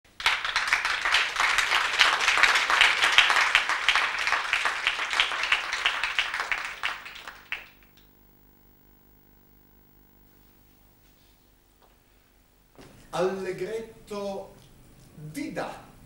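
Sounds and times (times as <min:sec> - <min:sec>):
audience applause: 0:00.1 - 0:08.2.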